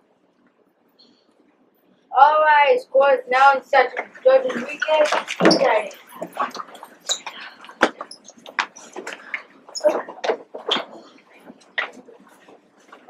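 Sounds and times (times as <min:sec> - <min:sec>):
children's voices: 0:02.2 - 0:06.1
shuffling and rustling: 0:03.9 - 0:13.0.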